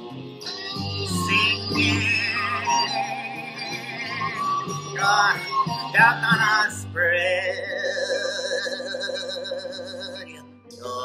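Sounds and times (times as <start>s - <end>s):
karaoke backing track: 0.0s - 11.0s.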